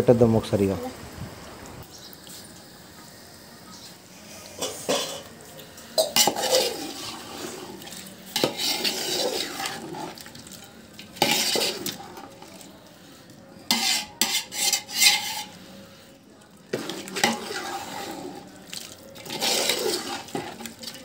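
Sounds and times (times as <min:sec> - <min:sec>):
metal spoon scraping pot: 0:06.0 - 0:10.3, 0:11.0 - 0:12.7, 0:13.7 - 0:15.8, 0:16.7 - 0:21.0.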